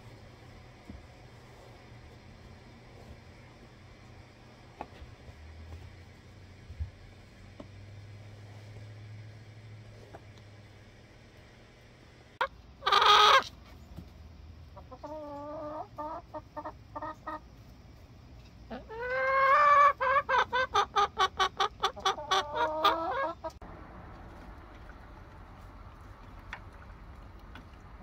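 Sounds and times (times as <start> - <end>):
chicken squawk: 12.4 - 13.6, 14.8 - 17.4, 18.7 - 23.5
chickens clucking: 12.4 - 23.6.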